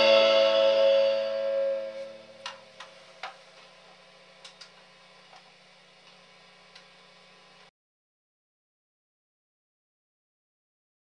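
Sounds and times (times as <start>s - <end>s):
steel guitar chord ringing: 0.0s - 2.8s
faint steady hum: 0.0s - 7.7s.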